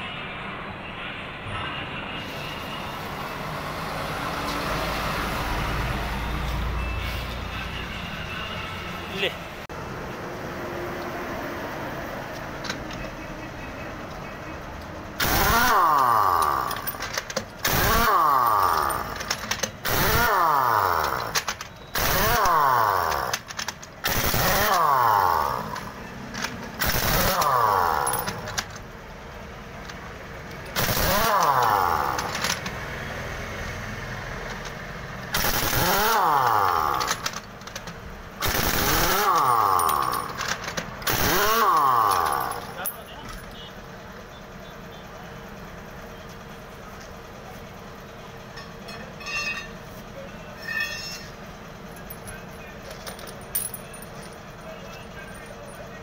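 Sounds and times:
pneumatic impact wrench: 15.1s - 28.8s, 30.5s - 32.8s, 34.5s - 42.8s.

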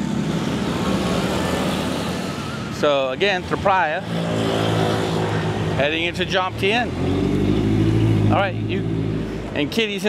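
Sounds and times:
street traffic passing: 0.0s - 10.0s.

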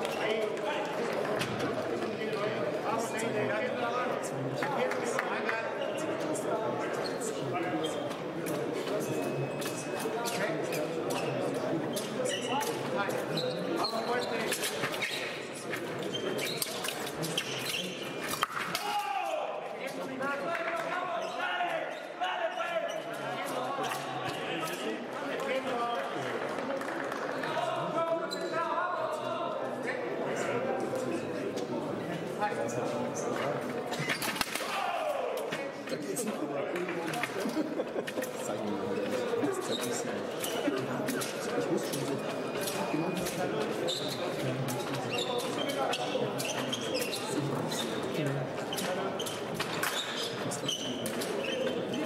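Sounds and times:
voices echoing in hall: 0.0s - 52.0s.

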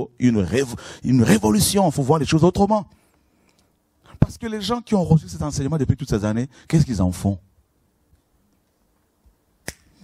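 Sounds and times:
sharp click: 9.6s - 9.9s.

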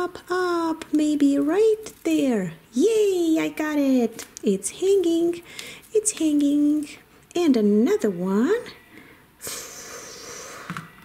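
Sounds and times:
breathy exhale: 9.0s - 10.8s.

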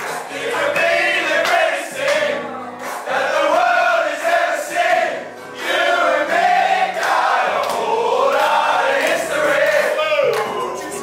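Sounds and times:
men chanting together: 3.1s - 10.3s.

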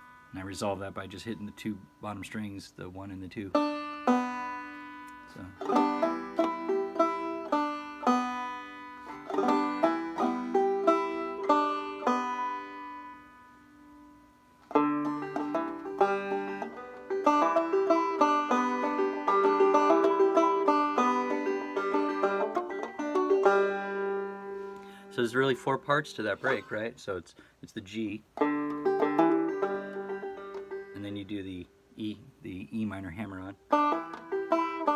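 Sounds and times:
banjo plucking and strumming: 0.0s - 26.9s, 27.9s - 31.6s, 33.3s - 34.9s.

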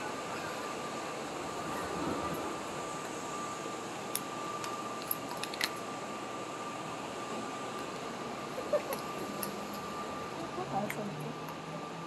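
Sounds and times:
indoor background hum: 0.0s - 12.0s
thin high whine: 0.0s - 12.0s.

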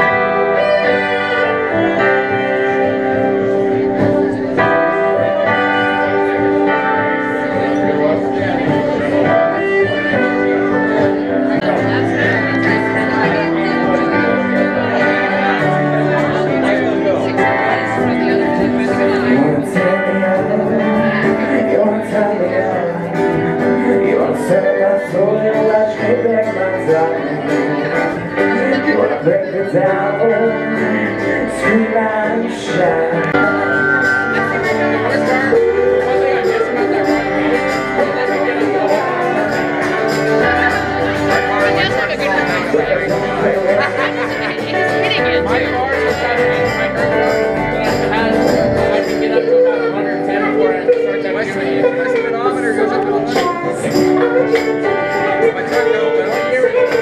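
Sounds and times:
guitar: 0.0s - 57.0s
keyboard: 0.0s - 57.0s
live band playing: 0.0s - 57.0s
man singing into a microphone: 0.0s - 57.0s.

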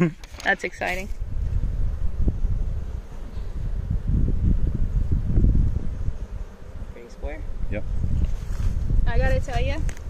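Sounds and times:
wind buffeting microphone: 0.7s - 10.0s.

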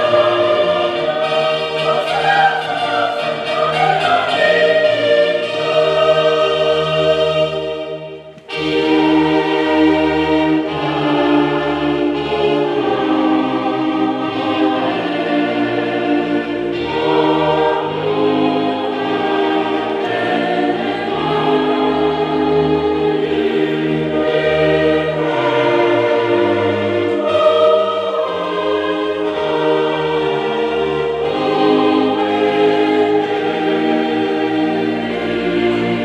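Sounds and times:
choir singing a hymn: 0.0s - 36.0s.

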